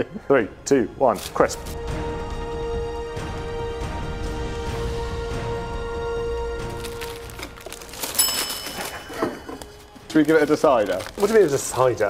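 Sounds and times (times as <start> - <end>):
plastic packet crinkling: 6.6 - 12.0
bell-like chime: 8.0 - 10.1.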